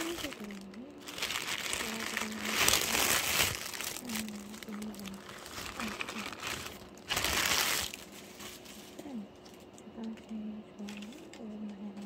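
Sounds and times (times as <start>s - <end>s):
packaging crinkling and rustling: 0.0s - 9.7s.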